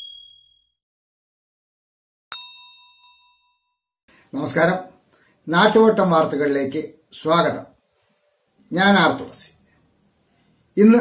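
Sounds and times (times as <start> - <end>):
bright notification bell ding: 0.0 - 0.7, 2.3 - 3.6.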